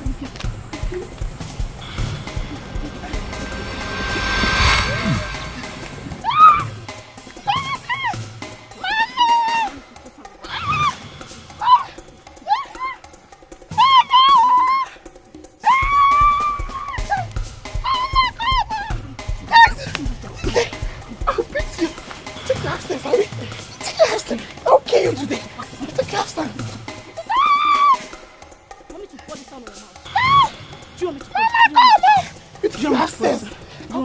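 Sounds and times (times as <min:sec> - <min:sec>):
background music with drum beat: 0:00.0 - 0:03.0, 0:07.5 - 0:34.0
film score rising whoosh: 0:00.8 - 0:07.1
woman's shrill cry: 0:13.7 - 0:14.9, 0:15.6 - 0:17.2, 0:27.2 - 0:28.0, 0:30.1 - 0:30.5.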